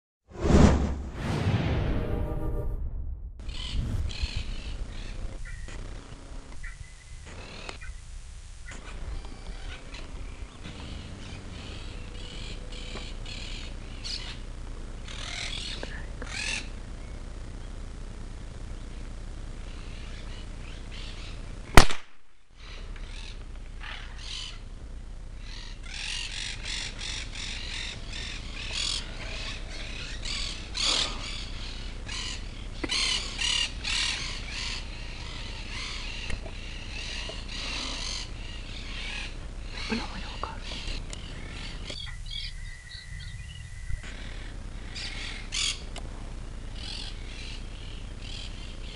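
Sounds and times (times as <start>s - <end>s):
birds chirping: 3.4s - 17.9s, 18.6s - 21.8s, 22.6s - 45.9s, 46.6s - 48.9s
rifle shot: 21.7s - 22.3s.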